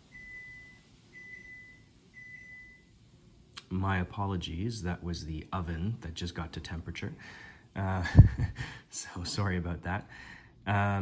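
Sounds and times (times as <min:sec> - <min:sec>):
oven beeping: 0:00.0 - 0:02.9.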